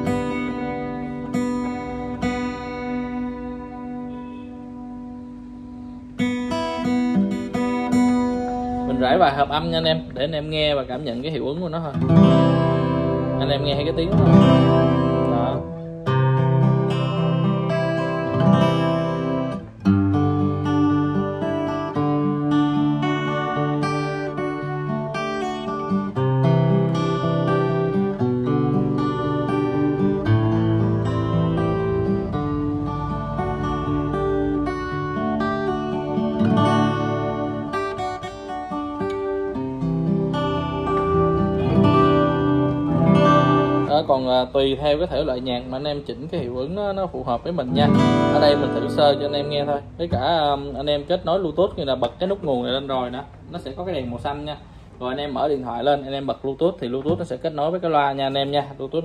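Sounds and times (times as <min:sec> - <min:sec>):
acoustic guitar strummed chords: 0:00.0 - 0:56.3.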